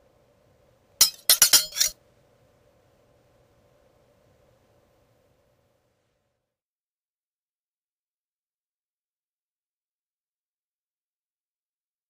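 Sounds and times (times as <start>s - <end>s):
sharp ringing clinks: 1.0s - 1.9s.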